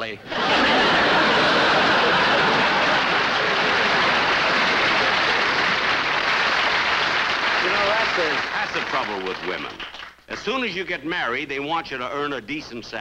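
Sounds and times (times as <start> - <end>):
audience laughing: 0.2 - 8.2
audience clapping: 0.3 - 10.6.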